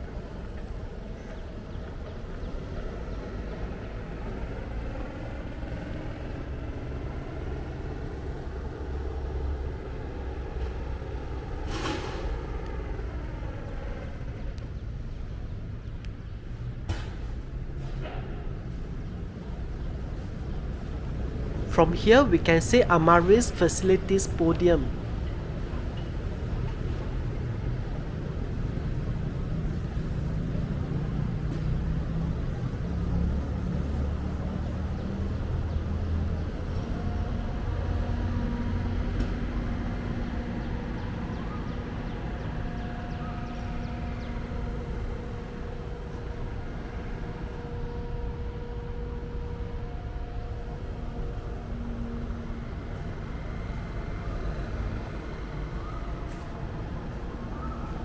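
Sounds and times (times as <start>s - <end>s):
hum of vehicle engines: 0.0s - 58.0s.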